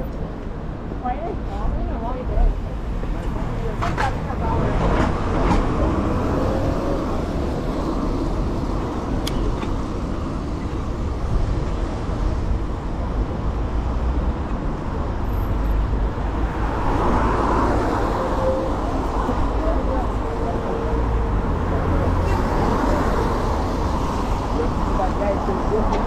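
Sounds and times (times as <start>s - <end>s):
city street traffic: 0.0s - 26.0s.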